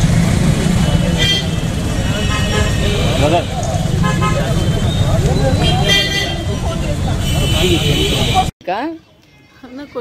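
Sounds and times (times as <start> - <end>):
traffic rumble: 0.0 - 10.0
vehicle horn: 0.8 - 8.5
people talking: 3.0 - 10.0.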